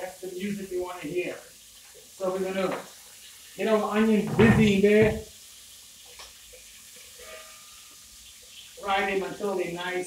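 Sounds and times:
onions sizzling in oil: 0.0s - 10.0s.

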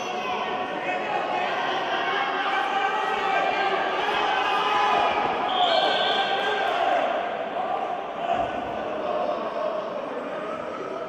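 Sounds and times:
people shouting: 0.0s - 9.8s.

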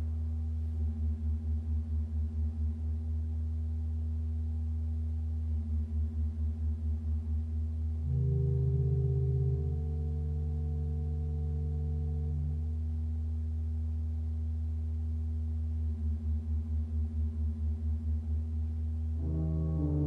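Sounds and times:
pipe organ chords and drone: 8.0s - 13.0s, 19.2s - 20.0s.

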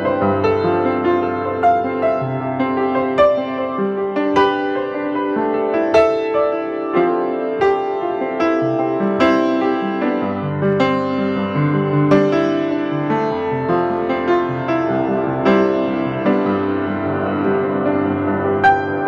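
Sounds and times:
piano bass notes: 0.0s - 19.0s
piano chords: 0.0s - 19.0s.

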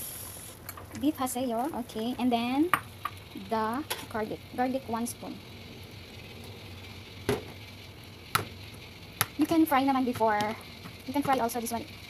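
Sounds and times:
soup boiling and bubbling: 0.0s - 12.0s.

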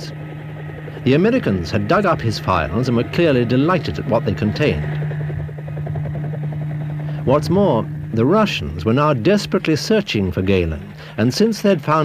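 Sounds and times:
helicopter rotor beating: 0.0s - 12.0s.

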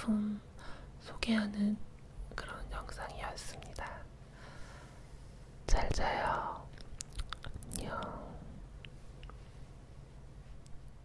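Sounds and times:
woman whispering: 0.0s - 4.1s, 5.7s - 6.8s, 7.6s - 8.6s.

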